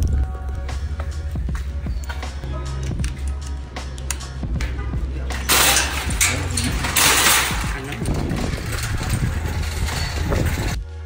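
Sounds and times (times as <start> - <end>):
loud steady rumbling noise: 0.0 - 11.0
shopping cart rattling: 5.3 - 10.8.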